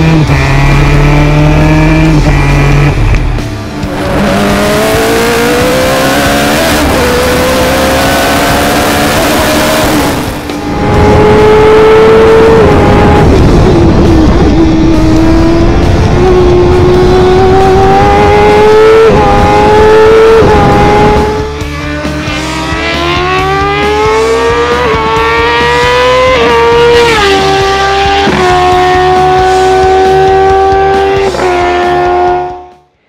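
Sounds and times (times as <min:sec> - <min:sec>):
race car engine at high revs: 0:00.0 - 0:32.9
music: 0:00.0 - 0:33.0.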